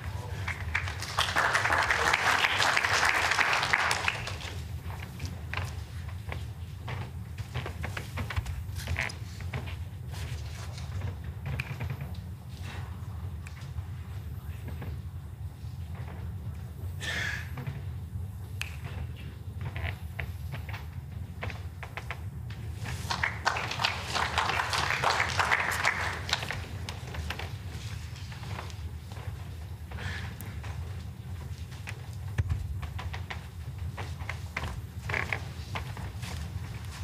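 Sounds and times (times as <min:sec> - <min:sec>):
spectators clapping: 0:00.0 - 0:05.0, 0:22.8 - 0:27.5
low indoor hum: 0:00.0 - 0:37.0.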